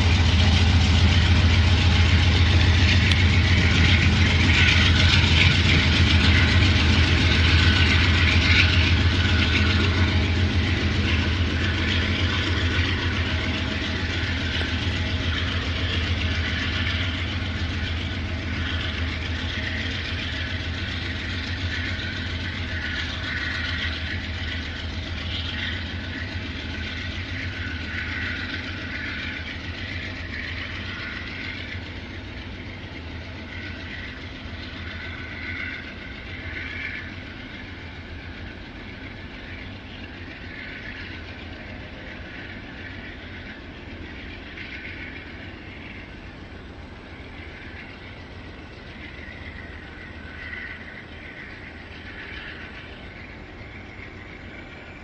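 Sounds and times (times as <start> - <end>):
diesel locomotive engine drone: 0.0 - 55.0
train wheels on rails: 0.0 - 55.0.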